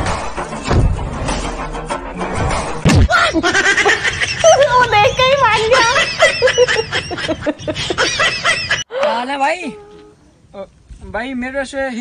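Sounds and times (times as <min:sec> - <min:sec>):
woman laughing: 0:05.7 - 0:10.2.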